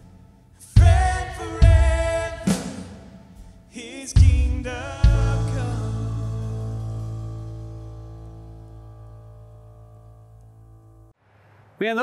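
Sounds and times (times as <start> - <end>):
live band final chord: 4.4 - 10.8.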